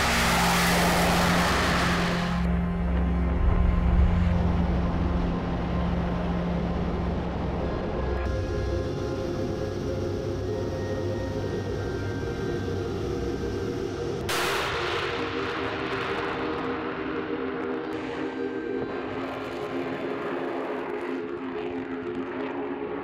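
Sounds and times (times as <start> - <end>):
jet taking off roar: 0.0 - 2.6
jet engines humming: 0.0 - 14.3.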